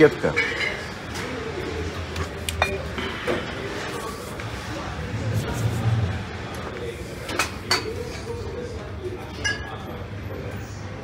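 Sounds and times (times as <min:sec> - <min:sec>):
glass bottles clinking: 0:09.4 - 0:09.7.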